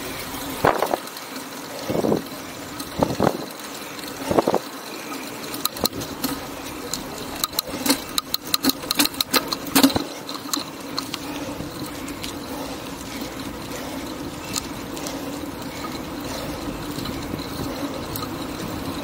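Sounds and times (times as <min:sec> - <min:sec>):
bicycle riding hum: 0:00.0 - 0:19.0
sharp clicks and rattles: 0:00.0 - 0:19.0.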